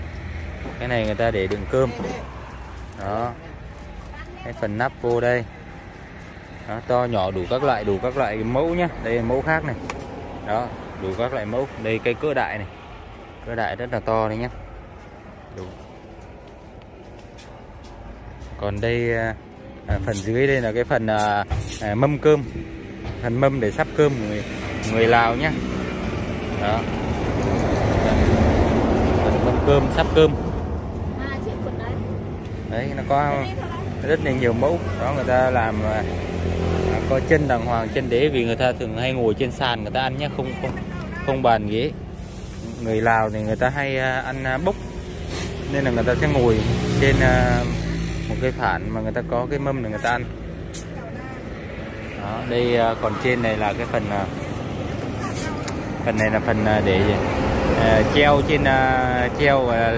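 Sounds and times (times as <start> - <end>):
outdoor background noise: 0.0 - 59.9.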